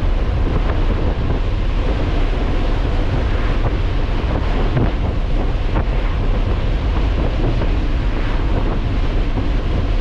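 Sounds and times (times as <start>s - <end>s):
car road and wind rumble: 0.0s - 10.0s.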